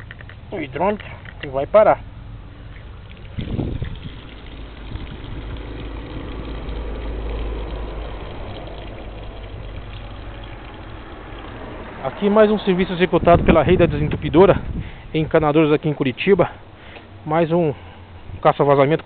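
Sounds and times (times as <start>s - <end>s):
vehicle engine rumble: 0.0s - 19.0s.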